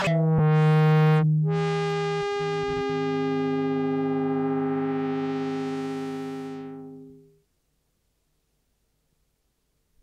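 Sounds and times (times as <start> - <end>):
synthesizer chord: 0.0 - 7.4.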